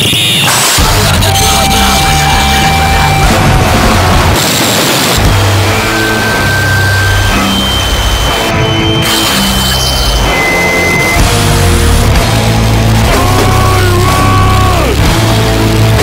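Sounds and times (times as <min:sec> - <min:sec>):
steady high tones: 0:00.0 - 0:12.6
harsh distorted noise music: 0:00.0 - 0:16.0.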